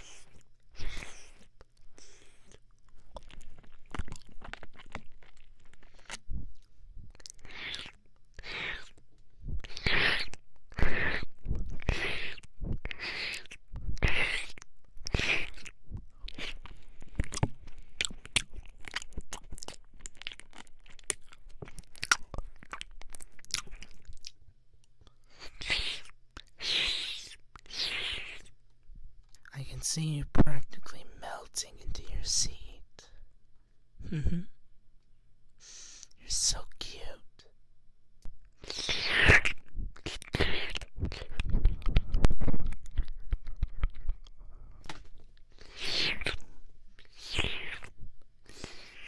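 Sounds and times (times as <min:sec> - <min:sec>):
close breathy whispering: 0:00.0 - 0:02.6, 0:29.5 - 0:33.3, 0:35.6 - 0:37.5
wet mouth sounds: 0:00.0 - 0:24.4, 0:25.0 - 0:28.6, 0:38.5 - 0:49.0
wet mouth clicks: 0:05.8 - 0:09.0, 0:25.0 - 0:28.6, 0:38.2 - 0:49.0.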